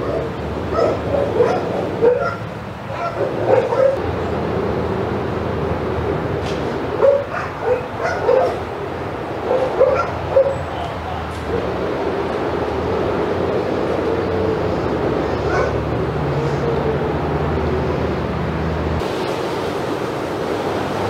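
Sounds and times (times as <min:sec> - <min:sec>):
dog barking and yipping: 0:00.0 - 0:04.0, 0:07.0 - 0:08.7, 0:09.4 - 0:11.6, 0:15.4 - 0:15.8
steady background noise: 0:00.0 - 0:21.0.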